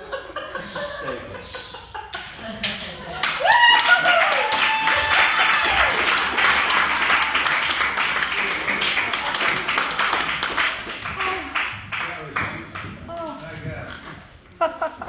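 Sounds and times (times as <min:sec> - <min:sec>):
audience applauding: 0:03.1 - 0:12.9
whoops and cheers: 0:03.2 - 0:07.4.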